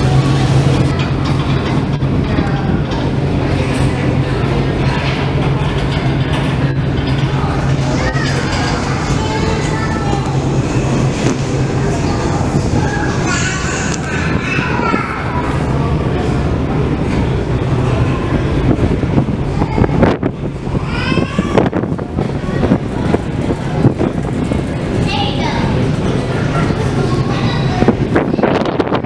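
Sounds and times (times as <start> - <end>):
faint passenger voices: 0.0 - 29.0
ferry engine rumble and hum: 0.0 - 29.0
wind buffeting microphone: 0.0 - 29.0.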